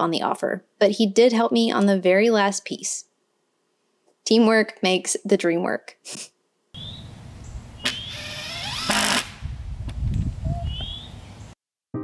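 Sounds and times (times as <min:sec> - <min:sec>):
low wind rumble: 0:06.8 - 0:11.6
burst of noise: 0:07.8 - 0:09.5.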